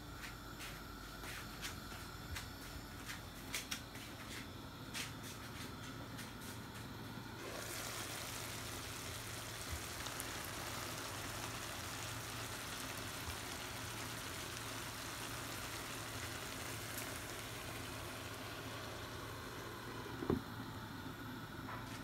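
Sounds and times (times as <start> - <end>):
curry sizzling and bubbling: 7.4 - 21.0.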